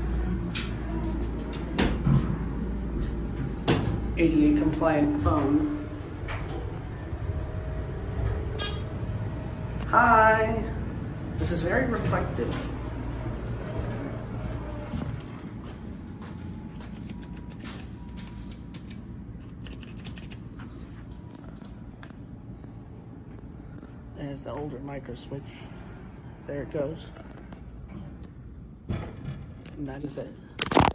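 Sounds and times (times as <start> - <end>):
elevator low rumble: 0.0 - 29.8.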